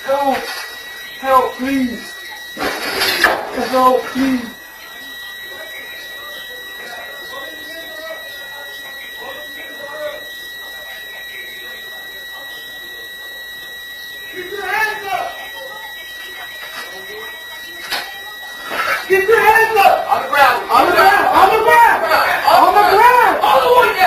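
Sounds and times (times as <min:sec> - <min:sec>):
high-pitched electronic alarm tone: 0:00.0 - 0:24.0.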